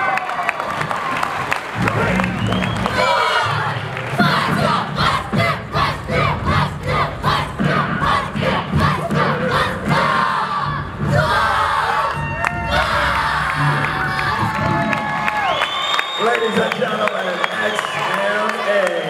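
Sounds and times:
many voices shouting and cheering: 0:00.0 - 0:19.0.

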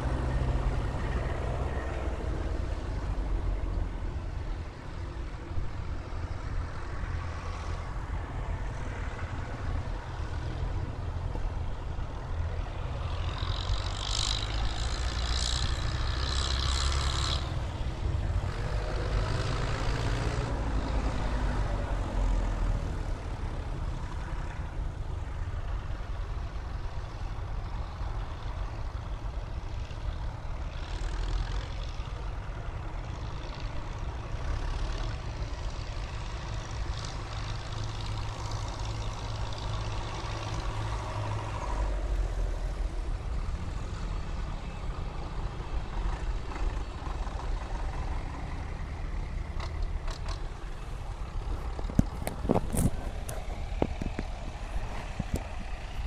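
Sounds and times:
tractor engines driving past: 0:00.0 - 0:56.0.

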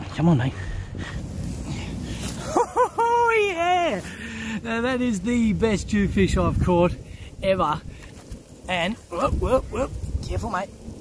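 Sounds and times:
rumbling and rustling on microphone: 0:00.0 - 0:02.7, 0:03.8 - 0:11.0
man yelping: 0:03.0 - 0:04.1.

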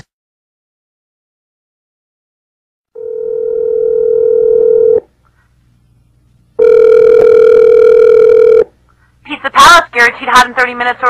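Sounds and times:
telephone ringing: 0:03.0 - 0:05.0, 0:06.6 - 0:08.7.

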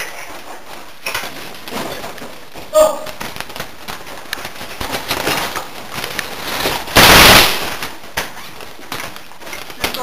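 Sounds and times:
loud bang: 0:06.8 - 0:08.0.

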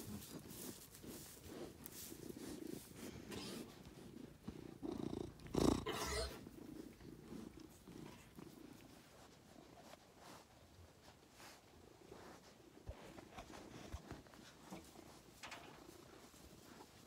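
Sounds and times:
cat purring: 0:02.2 - 0:10.4.

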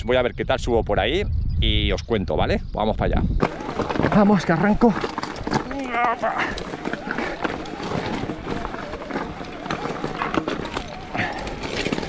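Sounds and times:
bike rattling: 0:03.4 - 0:12.0
tyres crunching on rock: 0:03.4 - 0:12.0
rider's wavering voice: 0:05.5 - 0:12.0.

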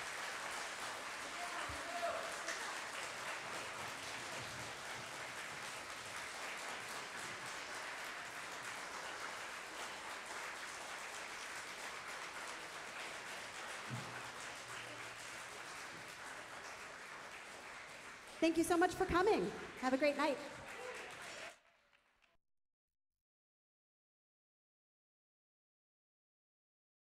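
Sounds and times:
audience applauding: 0:00.0 - 0:22.4.

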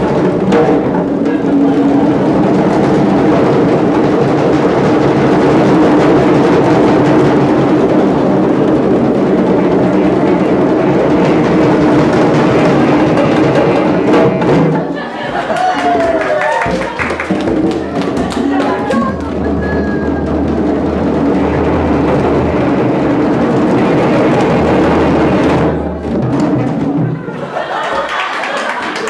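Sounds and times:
hand drums playing a groove: 0:00.0 - 0:27.3.

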